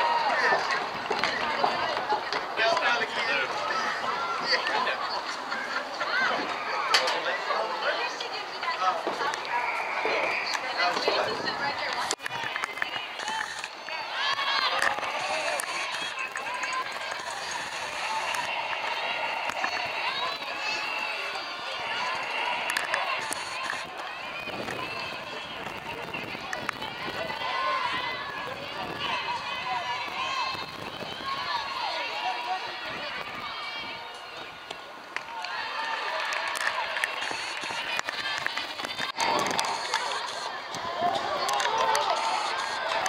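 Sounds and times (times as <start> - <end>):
crowd chattering and calling out: 0.0 - 43.0.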